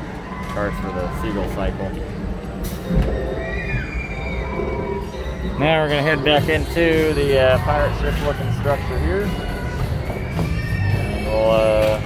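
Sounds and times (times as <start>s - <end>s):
high squeal gliding down: 2.8s - 12.0s.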